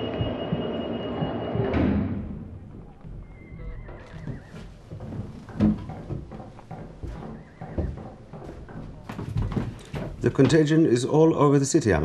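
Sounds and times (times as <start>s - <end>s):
hooves clopping: 0.0s - 1.7s, 2.5s - 11.1s
horse whinnying: 3.2s - 4.8s.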